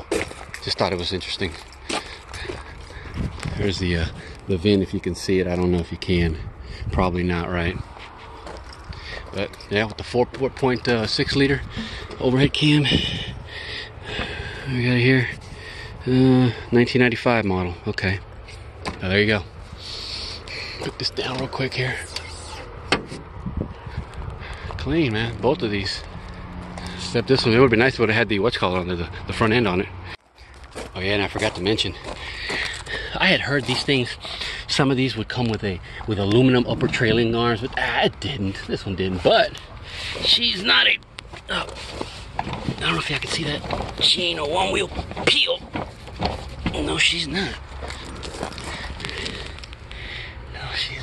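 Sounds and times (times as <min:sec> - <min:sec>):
footsteps on gravel: 0:00.0 - 0:04.6, 0:07.8 - 0:10.7, 0:30.4 - 0:34.1, 0:45.8 - 0:49.9
wind rumble on microphone: 0:02.7 - 0:05.2, 0:05.8 - 0:08.2, 0:10.7 - 0:14.6, 0:22.2 - 0:25.6.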